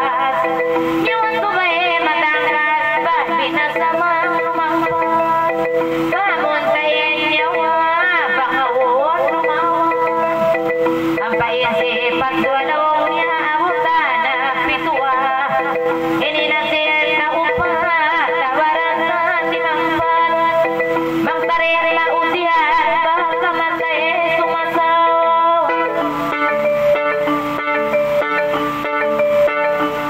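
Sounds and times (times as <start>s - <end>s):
electronic keyboard sustained notes: 0.0s - 30.0s
woman singing into a microphone: 0.0s - 30.0s
xylophone-like mallet melody: 0.0s - 30.0s.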